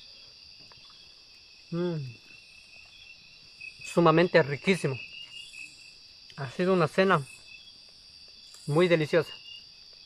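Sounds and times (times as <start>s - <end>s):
night insects chirping: 0.0s - 10.0s.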